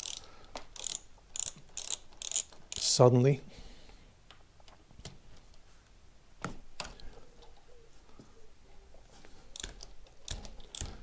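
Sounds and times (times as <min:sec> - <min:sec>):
torque wrench ratchet clicking: 0:00.0 - 0:03.0, 0:09.6 - 0:11.0.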